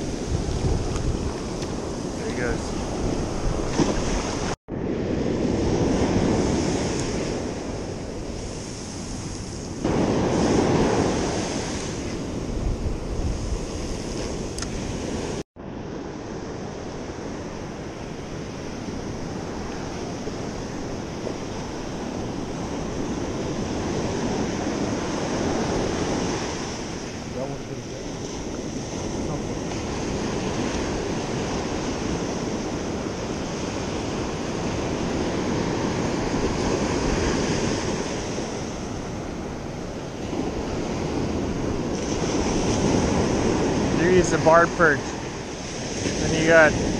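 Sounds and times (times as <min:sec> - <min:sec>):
ocean surf breaking on beach: 0:00.0 - 0:46.9
wind on microphone: 0:00.0 - 0:46.9.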